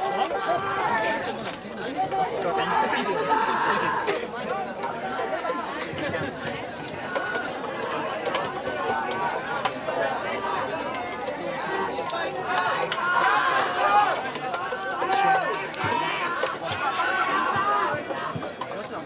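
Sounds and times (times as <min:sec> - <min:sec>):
young men shouting and chattering: 0:00.0 - 0:19.0.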